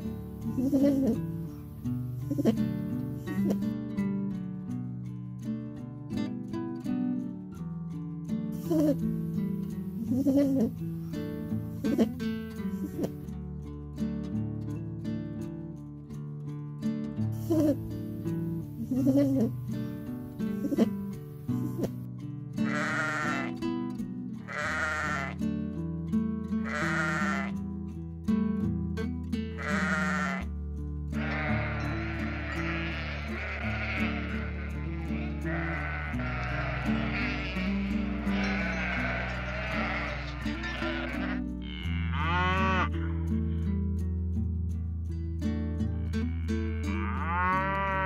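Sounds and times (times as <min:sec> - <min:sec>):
sheep bleating: 0:00.5 - 0:01.2, 0:18.8 - 0:19.6, 0:22.6 - 0:23.6, 0:24.4 - 0:25.4, 0:26.6 - 0:27.6, 0:29.6 - 0:30.5, 0:31.2 - 0:43.2, 0:46.0 - 0:48.0.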